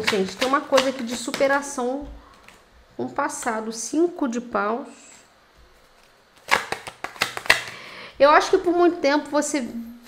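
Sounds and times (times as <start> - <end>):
cards being shuffled: 5.7 - 7.8.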